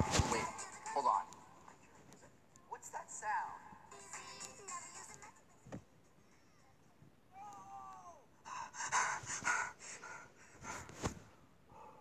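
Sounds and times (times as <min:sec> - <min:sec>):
man crying out: 0:07.3 - 0:08.3
man panting heavily: 0:08.4 - 0:10.9.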